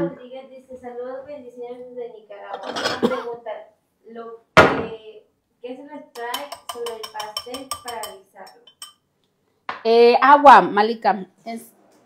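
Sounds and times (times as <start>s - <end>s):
utensil clinking against bowl: 6.2s - 9.0s.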